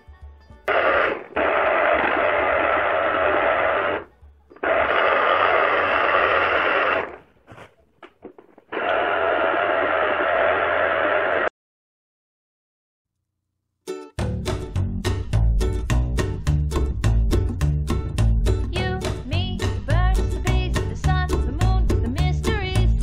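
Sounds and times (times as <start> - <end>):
electric juicer motor running: 1.0 - 4.0.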